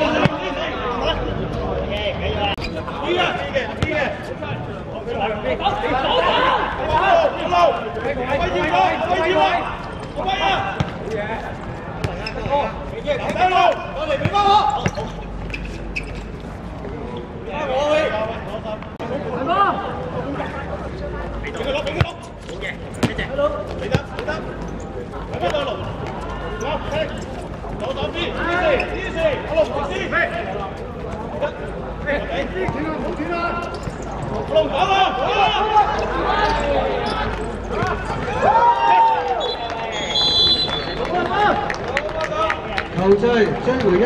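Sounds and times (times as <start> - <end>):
players calling and shouting: 0.0 - 44.0.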